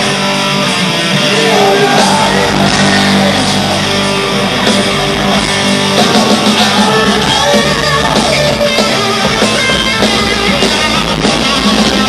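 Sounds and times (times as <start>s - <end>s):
electric guitar: 0.0s - 12.0s
heavy metal band playing live: 0.0s - 12.0s.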